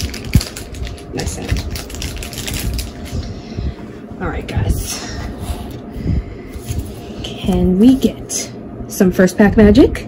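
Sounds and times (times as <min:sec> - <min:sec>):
foil pack rustling: 0:00.0 - 0:03.4.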